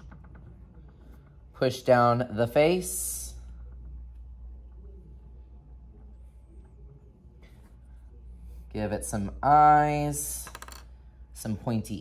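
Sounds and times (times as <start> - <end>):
low hum: 0.0 - 9.5.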